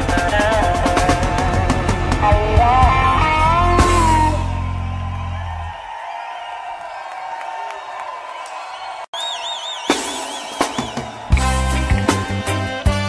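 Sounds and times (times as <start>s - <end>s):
reggae band low note: 0.0s - 5.6s, 9.9s - 13.0s
crowd cheering and whooping: 3.2s - 12.8s
high wavering whistle: 9.1s - 11.5s.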